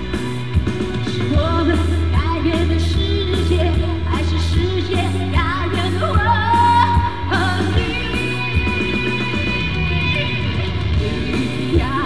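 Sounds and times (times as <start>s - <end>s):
amplified backing music with bass: 0.0s - 12.0s
woman singing into a microphone: 1.1s - 12.0s.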